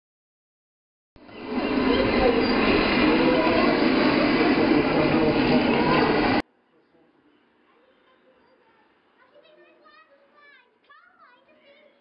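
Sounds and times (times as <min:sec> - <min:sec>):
rumbling room noise: 0:01.2 - 0:06.4
faint background murmur: 0:01.3 - 0:12.0
people's voices: 0:01.3 - 0:12.0.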